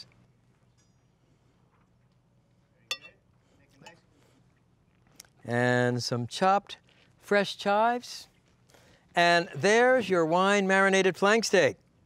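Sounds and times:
spoon clinking on cast iron pot: 2.9 - 3.2.

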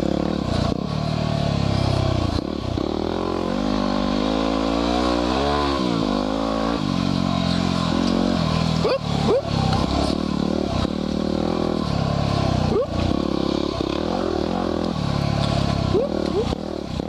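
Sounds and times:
motorcycle engine revving: 0.0 - 17.0.

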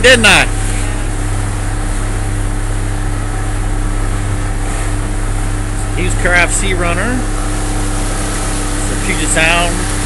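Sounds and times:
boat engine droning: 0.0 - 10.0.

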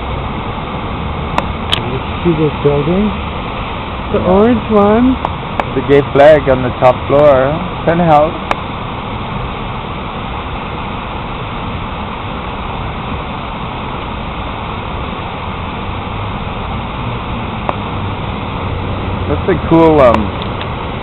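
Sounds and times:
hum of traffic: 0.0 - 21.0.

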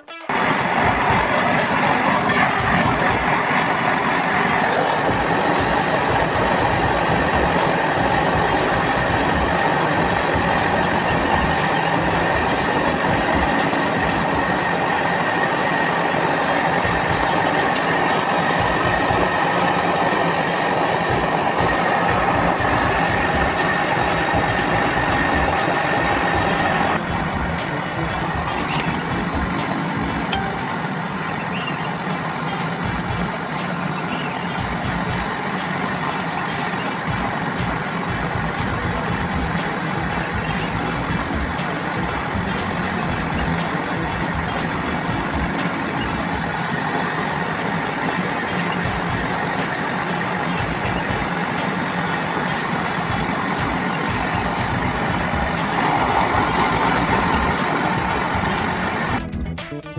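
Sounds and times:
gas torch hissing: 0.3 - 59.2.

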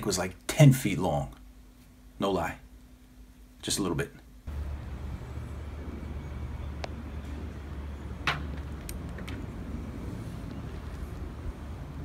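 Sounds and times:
steady low rumble: 4.4 - 12.0.

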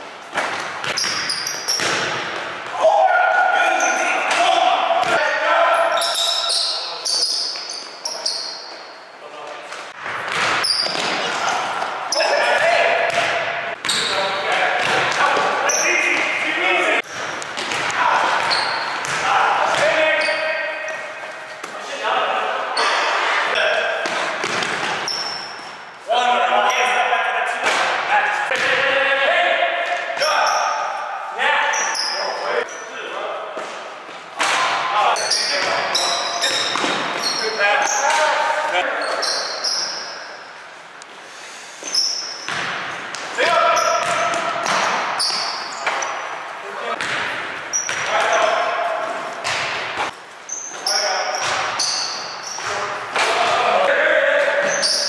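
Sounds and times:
basketballs bouncing on hardwood: 0.5 - 2.8, 13.1 - 15.6, 17.0 - 20.0, 24.0 - 25.2, 42.5 - 45.8, 47.0 - 48.4, 49.4 - 50.0, 51.4 - 51.9
players calling out: 10.6 - 33.0.

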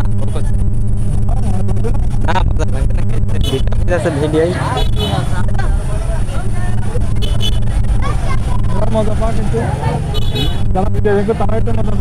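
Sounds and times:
crowd chatter: 0.0 - 12.0
motorcycle engine running: 0.0 - 12.0.

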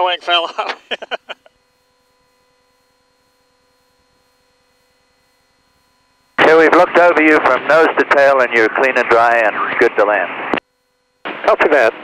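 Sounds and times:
faint electrical hum: 0.0 - 12.0
laugh over radio: 0.4 - 1.6.

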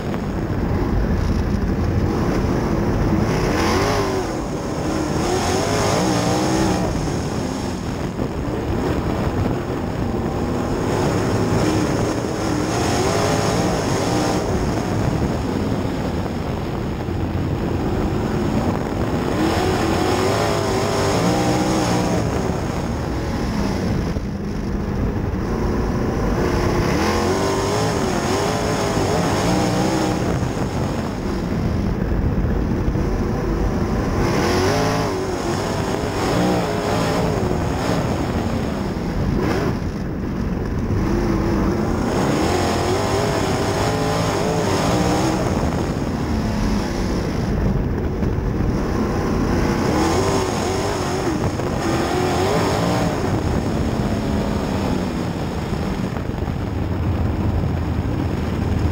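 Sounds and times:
race car engine revving: 0.0 - 56.6.

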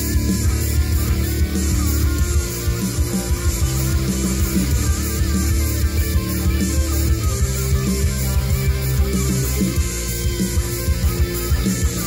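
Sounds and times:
electric guitar heavy rock: 0.0 - 12.0.

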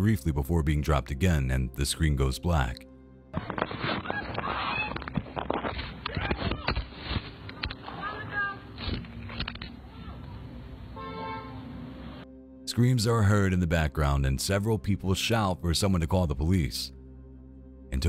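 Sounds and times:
gunfire: 3.4 - 4.6
people shouting and screaming: 3.4 - 5.2, 6.0 - 6.9.

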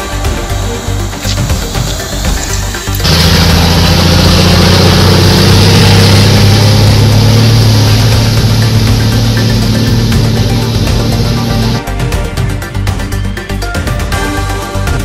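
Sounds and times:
water spraying from wheels: 0.0 - 11.9
truck engine rumble: 0.0 - 12.7.

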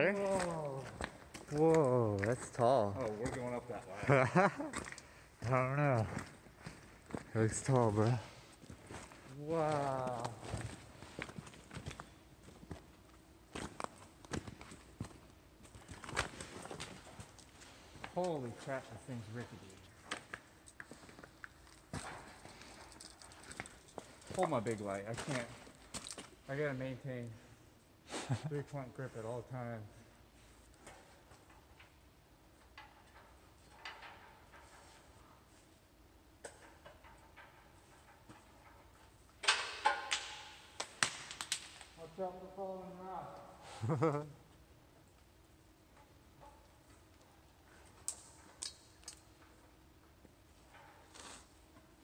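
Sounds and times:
metallic knocks on ladder rungs: 32.6 - 35.2, 36.4 - 41.8
ticks on a ladder: 39.4 - 41.8.

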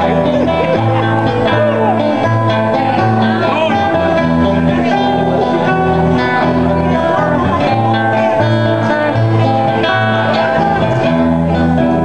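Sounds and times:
acoustic guitar strumming chords: 0.0 - 12.0
held low bass notes: 0.0 - 12.0.

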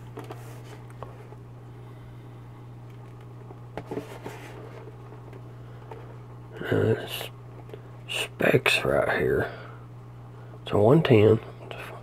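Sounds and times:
aquarium filter pump humming: 0.0 - 12.0.

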